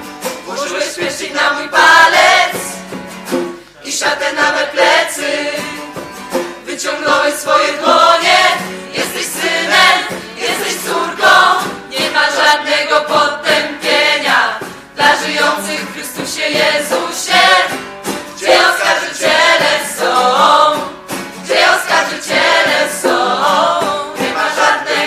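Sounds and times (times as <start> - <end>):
choir singing a worship song: 0.4 - 2.8, 3.8 - 25.0.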